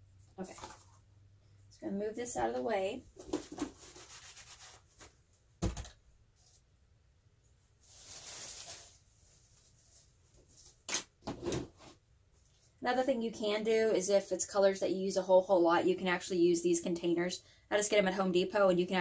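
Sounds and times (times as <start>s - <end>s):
scraping rustle: 7.8s - 10.8s
plastic sheet rustling: 7.8s - 10.9s.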